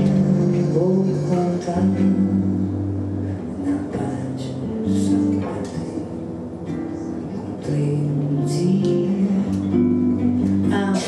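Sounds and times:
electric bass: 0.0 - 11.0
nylon-string acoustic guitar: 0.0 - 11.0.

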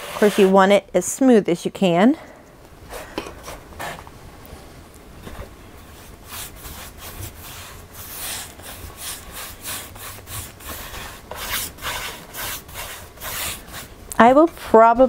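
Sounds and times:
paintbrush rubbing on wood: 5.9 - 14.9.

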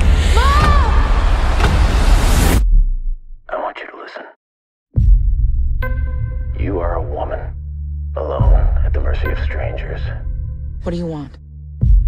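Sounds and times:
person whispering: 3.5 - 4.4.

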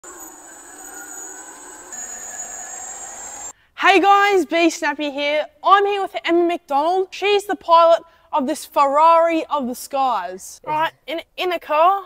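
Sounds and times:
electric whine of tug: 0.0 - 3.5.

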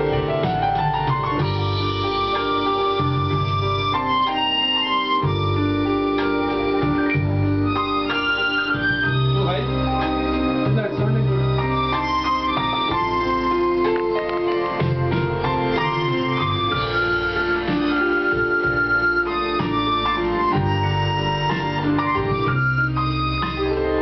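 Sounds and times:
accordion melody: 0.0 - 24.0.

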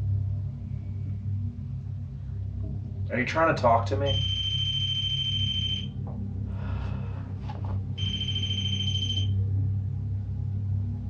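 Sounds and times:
low steady drone: 0.0 - 11.0
high electronic alarm beep: 4.1 - 6.0, 8.0 - 9.4.

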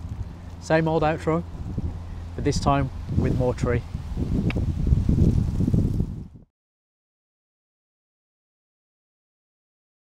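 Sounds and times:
wind buffeting microphone: 0.0 - 6.5.

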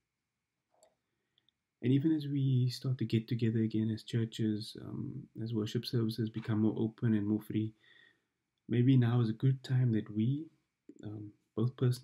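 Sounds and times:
man speaking: 1.8 - 7.8, 8.7 - 12.0.

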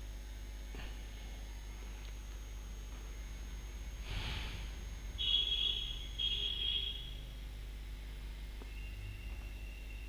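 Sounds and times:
faint steady tone: 0.0 - 10.0
low hum: 0.0 - 10.0.

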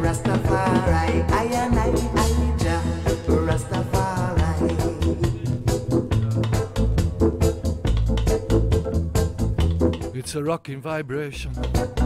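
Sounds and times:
reggae music over a sound system: 0.0 - 10.2, 11.5 - 12.0.

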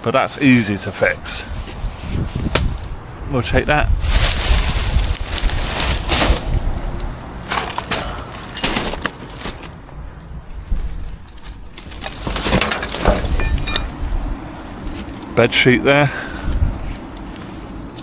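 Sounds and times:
plastic bags rustling: 4.0 - 6.6, 10.9 - 13.9.

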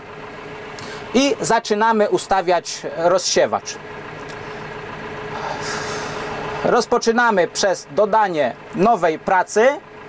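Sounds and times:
tractor engine idling: 0.0 - 10.0.

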